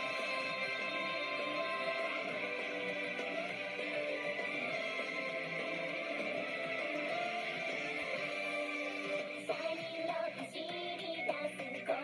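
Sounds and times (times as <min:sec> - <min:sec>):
upbeat pop song: 0:00.0 - 0:12.0
women singing: 0:09.2 - 0:12.0.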